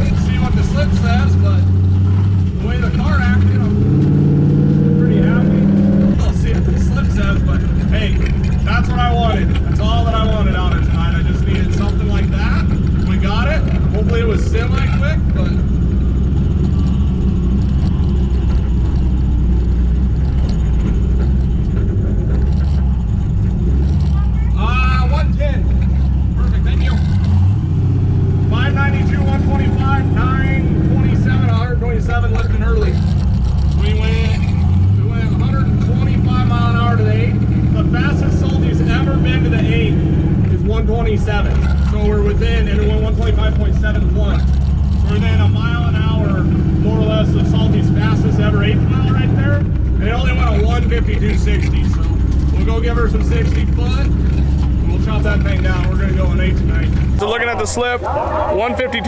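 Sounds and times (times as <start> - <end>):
car engine low drone: 0.0 - 59.0.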